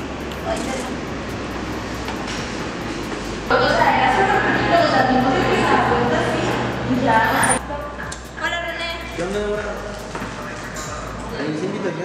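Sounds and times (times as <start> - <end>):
steady rushing noise: 0.0 - 11.4.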